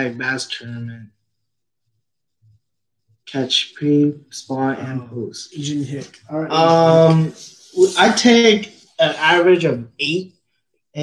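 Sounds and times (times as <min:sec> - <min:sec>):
man speaking: 0:00.0 - 0:01.1, 0:03.3 - 0:10.3.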